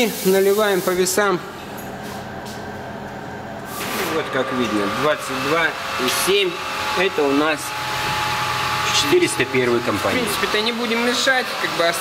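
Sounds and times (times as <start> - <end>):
low mechanical hum: 0.9 - 11.5.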